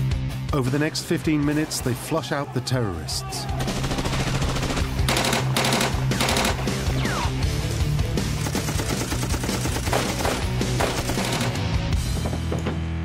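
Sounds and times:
automatic gunfire bursts: 3.6s - 6.8s, 8.4s - 11.7s.

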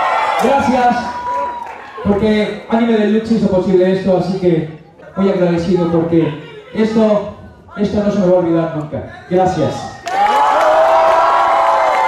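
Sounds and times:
audience cheering and screaming: 0.0s - 2.4s, 10.0s - 12.0s
applause: 0.1s - 2.0s, 10.0s - 12.0s.

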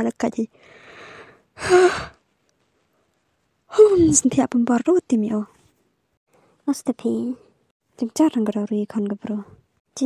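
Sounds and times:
person breathing in: 0.6s - 2.2s
person sighing: 1.6s - 2.2s.

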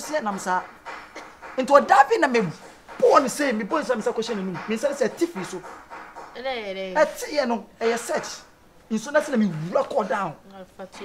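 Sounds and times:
conversational speech: 0.0s - 0.7s, 1.6s - 5.7s, 6.3s - 11.0s.

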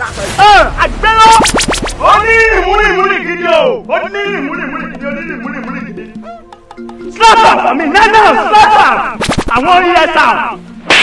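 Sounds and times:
voice: 0.0s - 6.2s, 7.2s - 10.6s.

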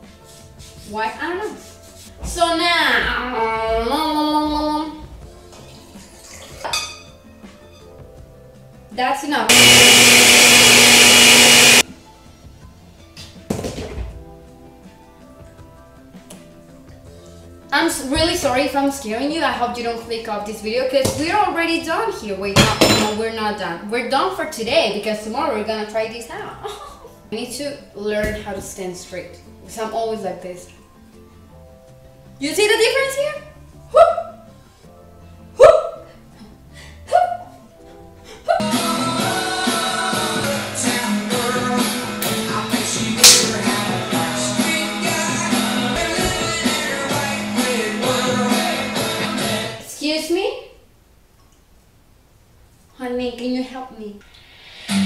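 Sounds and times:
faint background music: 0.0s - 9.5s, 11.8s - 51.3s, 52.0s - 55.0s
blender whirring: 9.5s - 11.8s
woman exclaiming woo: 33.9s - 34.4s, 35.6s - 36.0s.

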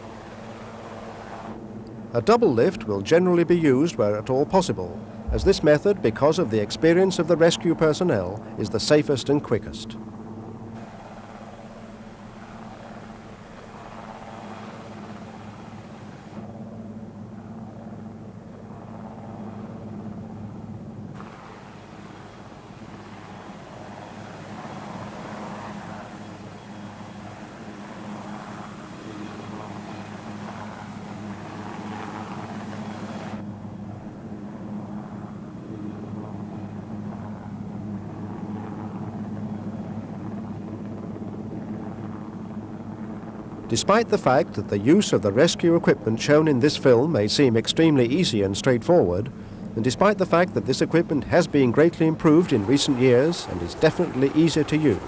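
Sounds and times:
helicopter hovering: 0.0s - 55.0s.

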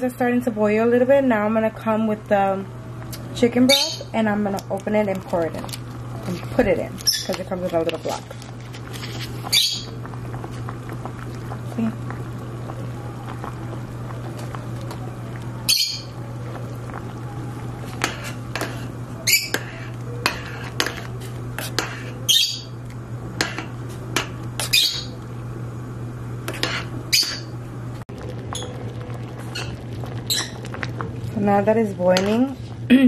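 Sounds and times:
steady low hum: 0.0s - 33.0s
metal spoon scraping a pot: 18.0s - 22.2s, 26.5s - 27.5s.

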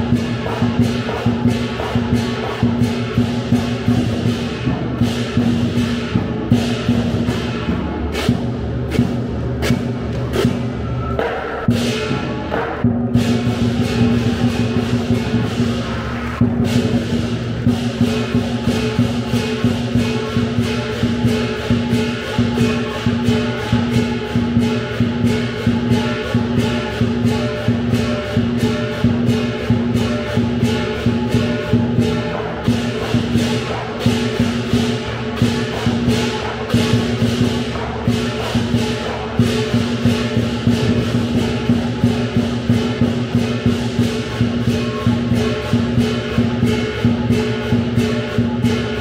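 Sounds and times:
gong: 0.0s - 49.0s
large drum beaten fast: 0.0s - 49.0s
ringing cymbals: 0.0s - 49.0s.

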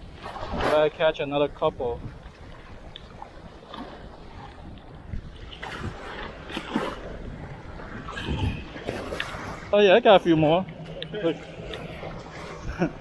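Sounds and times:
small waves washing: 0.0s - 13.0s
wind on microphone: 0.0s - 13.0s.

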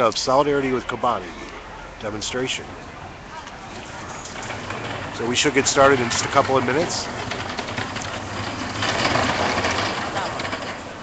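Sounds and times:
road noise: 0.0s - 11.0s
vehicle engine humming: 0.0s - 11.0s.

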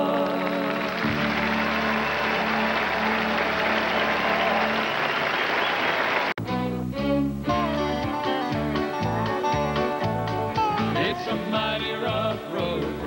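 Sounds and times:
audience applause: 0.0s - 6.4s
acoustic guitar: 6.4s - 13.0s.

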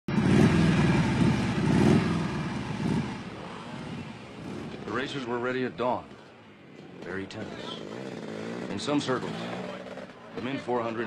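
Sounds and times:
motorcycle engine running: 0.1s - 10.7s.

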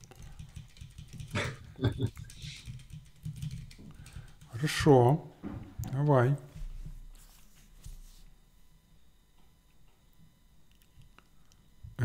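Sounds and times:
computer keyboard typing: 0.0s - 4.8s.

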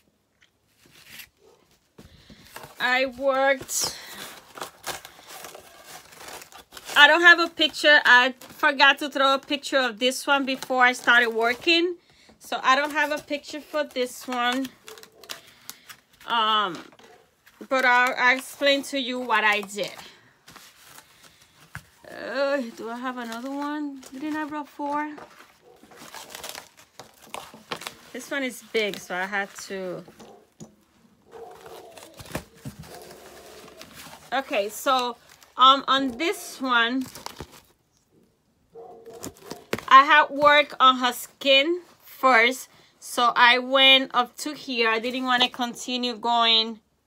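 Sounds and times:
crinkling and rustling: 0.0s - 42.5s.

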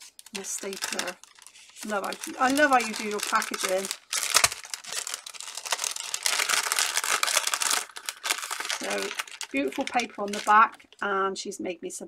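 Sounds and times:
cellophane bag crinkling: 0.0s - 11.0s.

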